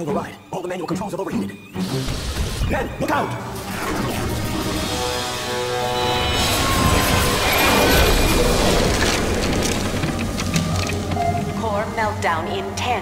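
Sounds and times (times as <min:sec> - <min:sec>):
dramatic background music: 0:00.0 - 0:13.0.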